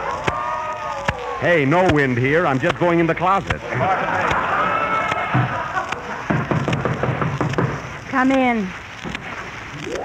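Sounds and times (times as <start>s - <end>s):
knocking on door: 6.3s - 7.8s.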